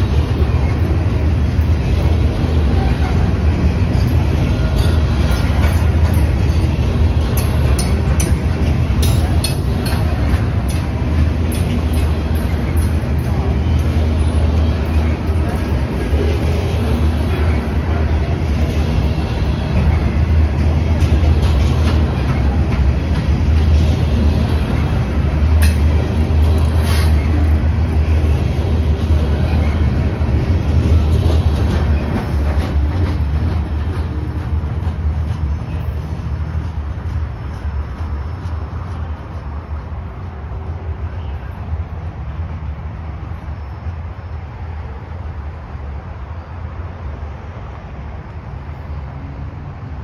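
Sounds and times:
steel wheels rumbling on rails: 0.0s - 50.0s.

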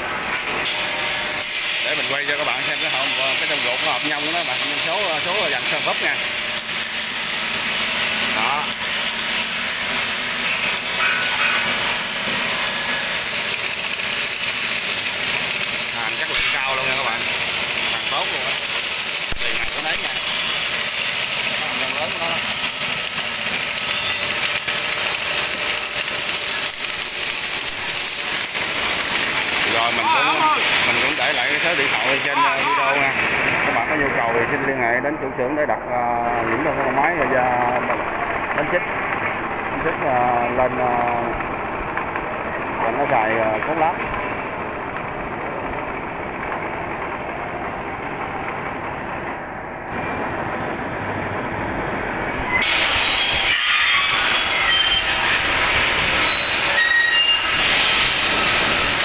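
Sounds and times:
loud mechanical noise with hiss: 0.0s - 59.0s.

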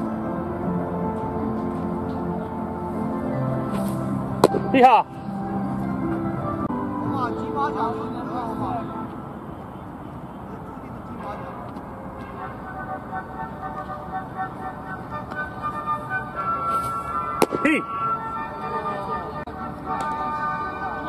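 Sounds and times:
background murmur: 0.0s - 21.0s
sharp smack of baseball: 4.4s - 4.7s, 17.4s - 17.7s.

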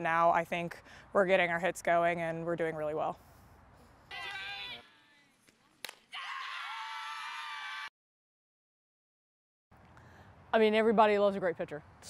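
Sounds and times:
person shouting: 4.1s - 4.9s
bat crack: 5.4s - 6.2s
voices cheering and yelling: 6.1s - 7.9s.

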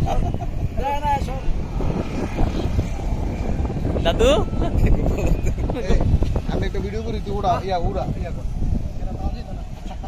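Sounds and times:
man laughing: 0.0s - 0.8s.

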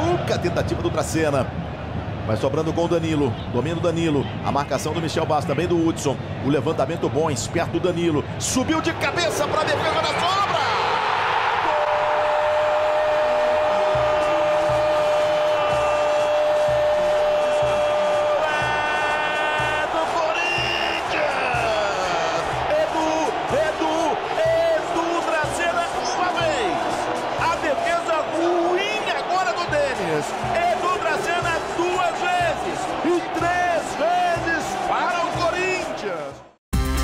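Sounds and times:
stadium crowd: 0.0s - 36.6s
excited commentary: 2.3s - 16.2s, 17.6s - 36.5s
commentator shouting: 11.7s - 36.3s.

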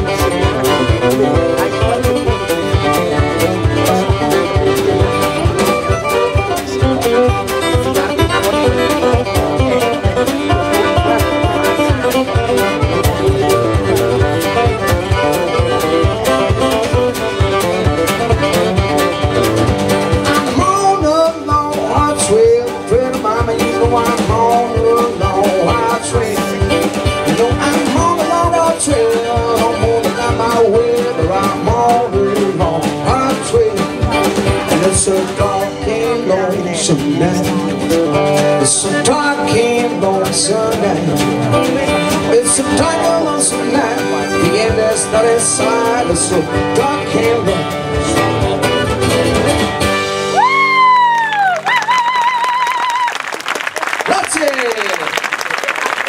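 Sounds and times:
drum kit: 0.0s - 51.7s
acoustic guitar: 0.0s - 53.1s.

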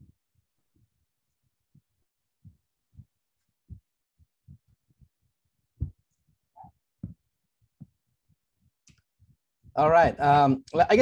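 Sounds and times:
faint low thumps and knocks: 1.7s - 5.2s, 5.8s - 6.2s, 7.0s - 8.4s.

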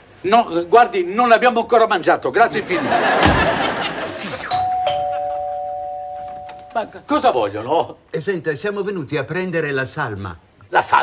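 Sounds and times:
door shutting with a thump: 3.2s - 3.7s
two-tone doorbell chime: 4.5s - 6.9s.

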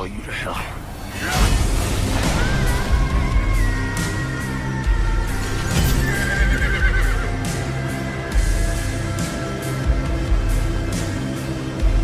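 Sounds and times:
horse whinnying: 6.0s - 7.3s.

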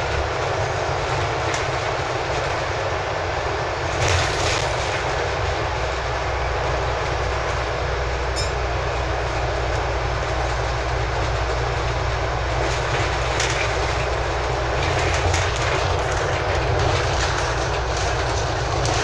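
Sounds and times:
bus body rattling: 0.0s - 19.0s
bus engine drone: 0.0s - 19.0s
road and tyre noise: 0.0s - 19.0s
high squeak: 8.4s - 8.6s.

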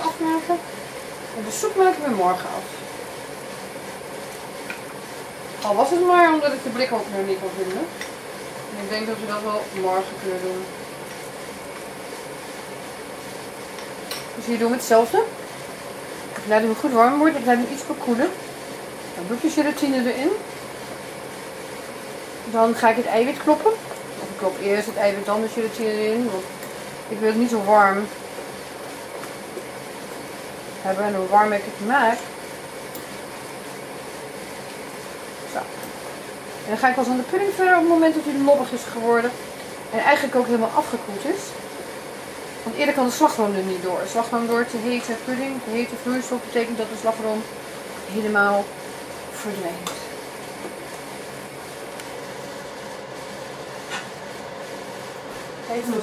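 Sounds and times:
gas burner hiss: 0.0s - 56.0s.

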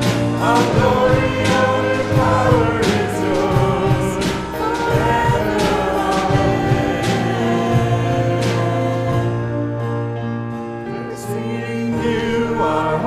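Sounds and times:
drum kit: 0.0s - 10.1s
choir singing praise song: 0.0s - 13.0s
keyboard: 0.0s - 13.0s.

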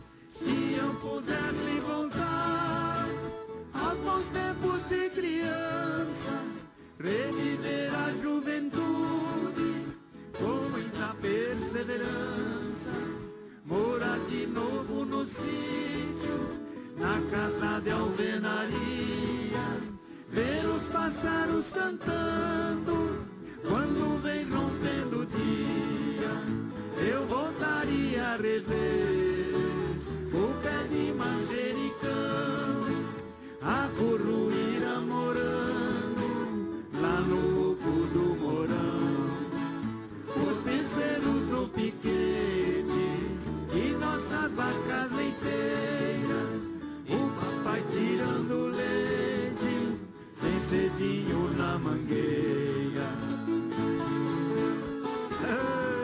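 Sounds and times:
ten-string guitars playing country song: 0.0s - 56.0s
voices singing along: 0.0s - 56.0s.

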